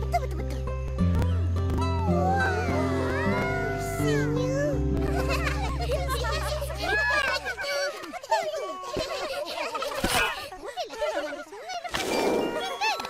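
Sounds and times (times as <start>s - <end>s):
background music with low notes: 0.0s - 7.8s.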